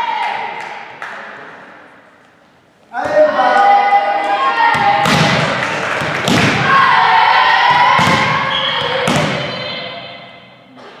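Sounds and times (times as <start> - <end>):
players shouting: 2.9 - 10.4
volleyball hits: 4.6 - 9.9.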